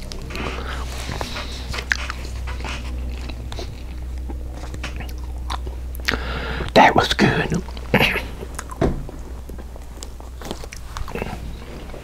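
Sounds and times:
chewing food: 0.0s - 6.8s, 7.6s - 12.0s
wet mouth clicks: 5.0s - 6.8s.

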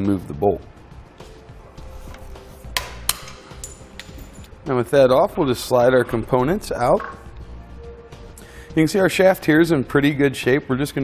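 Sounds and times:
soft background music: 0.0s - 11.0s
sharp tool click: 2.8s - 4.2s.

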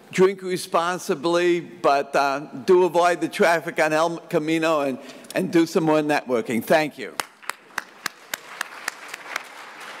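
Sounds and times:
audience applauding: 7.2s - 10.0s
close sharp hand claps: 7.2s - 10.0s.

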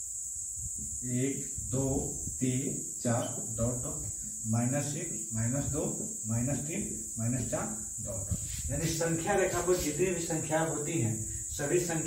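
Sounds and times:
crickets trilling: 0.0s - 12.0s
man speaking: 1.0s - 12.0s.

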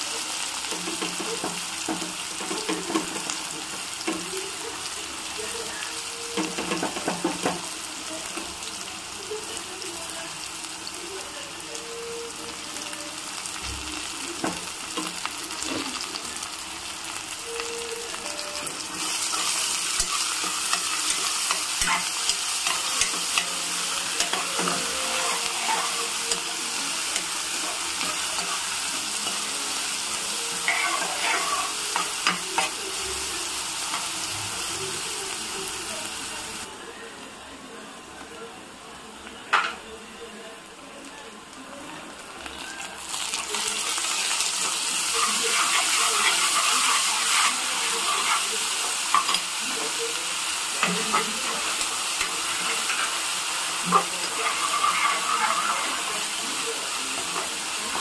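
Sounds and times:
onions sizzling in hot oil: 0.0s - 37.4s, 40.7s - 58.0s.

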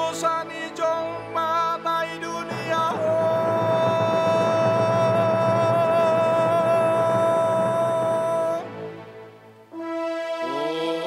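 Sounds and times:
man singing a long note: 0.0s - 9.0s, 10.4s - 11.0s
soft instrumental accompaniment: 0.0s - 11.0s.

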